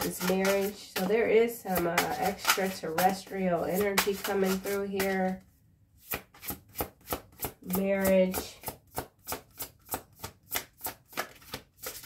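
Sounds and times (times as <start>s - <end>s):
cards shuffled by hand: 0.0s - 1.1s, 1.8s - 5.4s, 9.3s - 12.0s.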